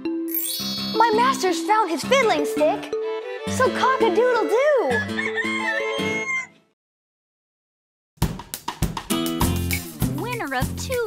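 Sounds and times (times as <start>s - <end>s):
children's song: 0.6s - 2.9s
rooster crowing: 5.0s - 6.7s.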